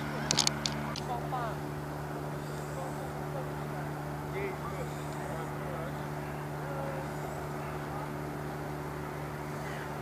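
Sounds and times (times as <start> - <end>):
faint distant voices: 0.0 - 10.0
steady low hum: 0.0 - 10.0.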